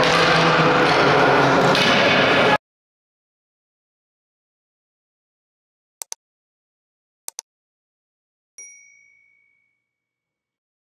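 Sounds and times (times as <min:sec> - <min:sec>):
bell ding: 0:08.6 - 0:10.5.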